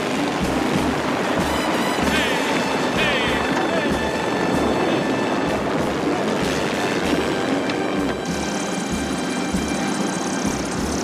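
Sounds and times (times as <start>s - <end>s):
helicopter rotor and engine: 0.0s - 11.0s.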